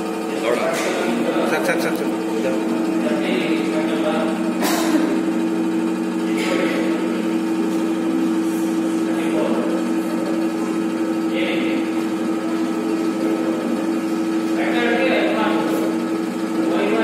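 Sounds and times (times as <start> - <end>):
hydraulic pump humming: 0.0 - 17.0.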